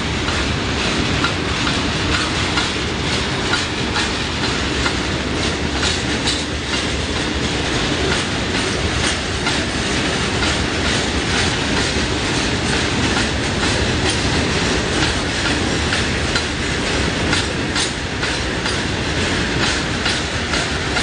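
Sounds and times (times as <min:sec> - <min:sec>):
train wheels clattering over rail joints: 0:00.0 - 0:21.0.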